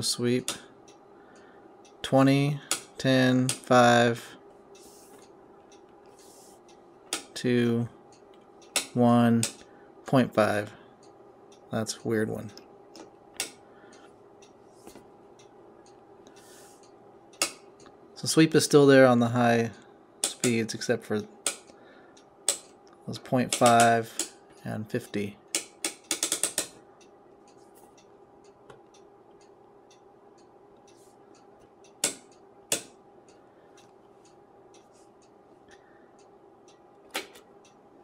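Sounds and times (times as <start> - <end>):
rotary switch clicking: 8.1 - 9.6, 12.9 - 13.6, 21.4 - 24.4, 25.5 - 34.9.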